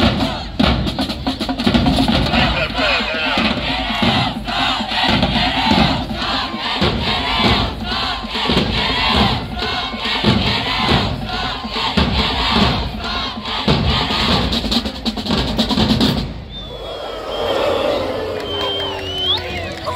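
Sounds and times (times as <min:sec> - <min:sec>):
crowd chanting: 0:00.0 - 0:00.8, 0:02.1 - 0:14.6
drum hits: 0:00.0 - 0:16.5.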